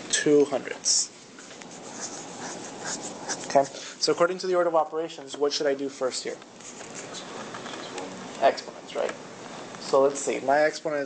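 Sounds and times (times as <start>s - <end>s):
pen scratching on paper: 1.7s - 3.7s.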